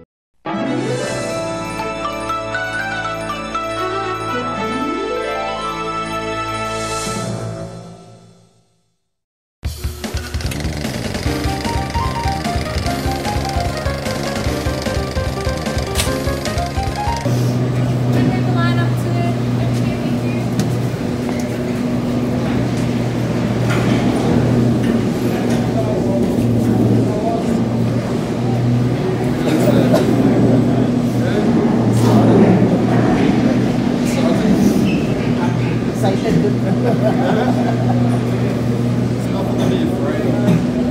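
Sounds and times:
title music with a beat: 0:09.7 - 0:17.3
gondola machinery hum: 0:09.7 - 0:40.9
people murmuring: 0:25.0 - 0:40.9.

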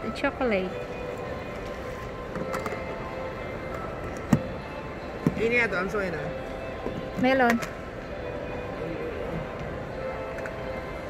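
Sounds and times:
background music: 0:00.0 - 0:11.0
indoor public space ambience: 0:00.0 - 0:11.0.

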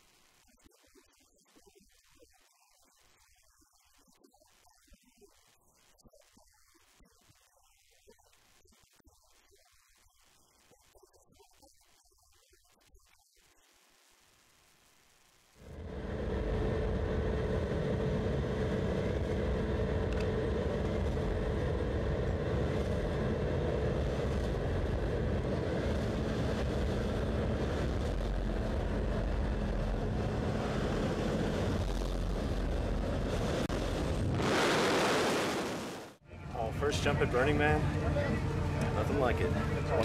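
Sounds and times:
airplane engine drone in cabin: 0:15.6 - 0:34.6, 0:36.3 - 0:40.0.

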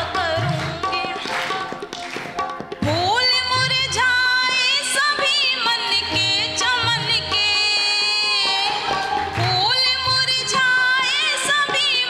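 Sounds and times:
woman singing: 0:00.0 - 0:02.1, 0:02.8 - 0:12.0
audience clapping: 0:00.1 - 0:02.8, 0:08.6 - 0:10.6.

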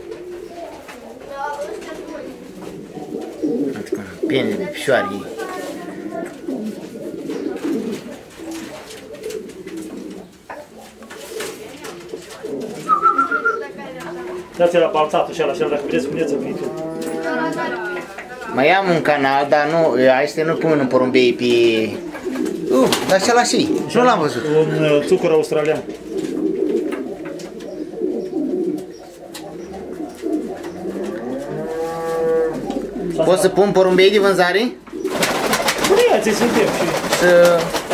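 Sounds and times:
pigeons cooing: 0:00.0 - 0:37.9.

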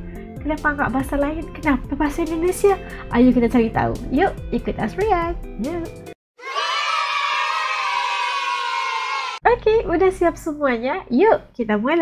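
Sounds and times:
crowd cheering: 0:06.4 - 0:09.4.

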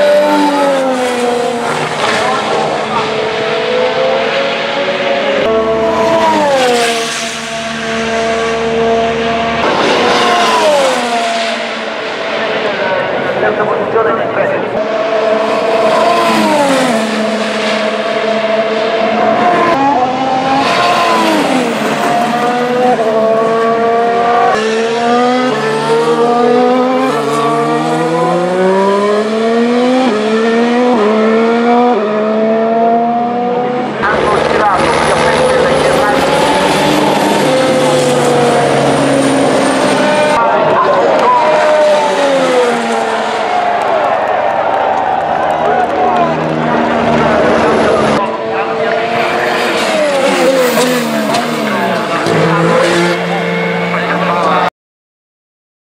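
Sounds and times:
racing car engine shifting gears: 0:00.0 - 0:13.7, 0:14.7 - 0:54.7.

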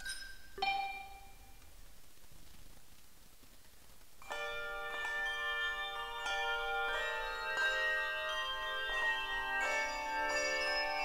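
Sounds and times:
handbell choir ringing: 0:04.3 - 0:11.0.

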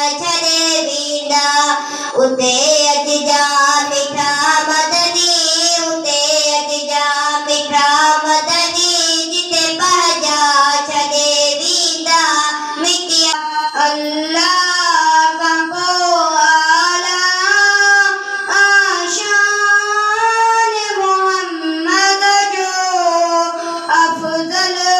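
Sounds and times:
boy singing into microphone: 0:00.0 - 0:24.9.

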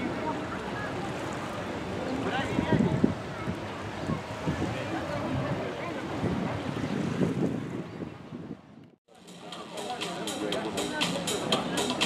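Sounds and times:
small waves lapping: 0:00.0 - 0:08.2
wind buffeting microphone: 0:02.2 - 0:09.0.

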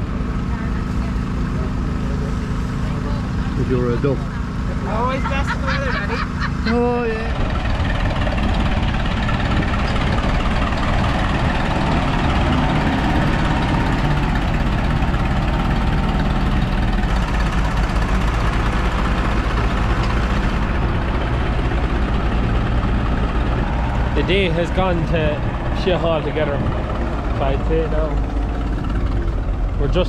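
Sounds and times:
tractor engine running: 0:00.0 - 0:30.0
truck engine running: 0:00.0 - 0:30.0.

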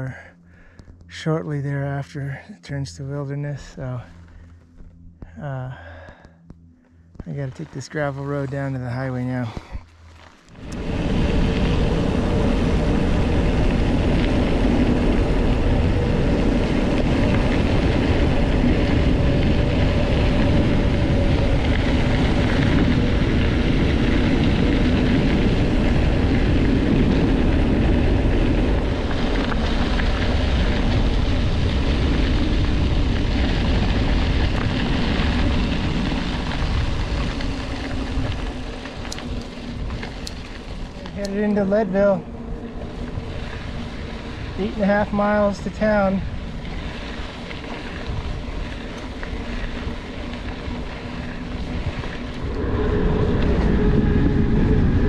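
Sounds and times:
bike tyres rolling on gravel: 0:00.0 - 0:55.0
wind rushing over microphone: 0:10.5 - 0:55.0.

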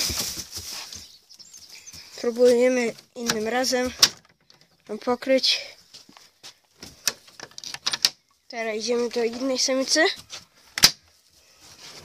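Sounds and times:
wire-mesh hutch rattling: 0:02.0 - 0:05.2.

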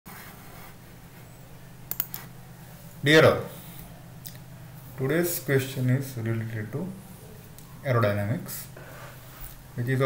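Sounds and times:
quick clicks: 0:01.9 - 0:02.3.

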